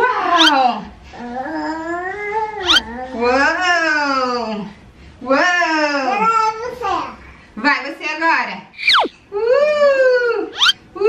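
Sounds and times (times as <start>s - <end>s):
brief high squeaks: 0.4s - 0.6s, 2.6s - 2.9s, 8.8s - 9.2s, 10.6s - 10.8s.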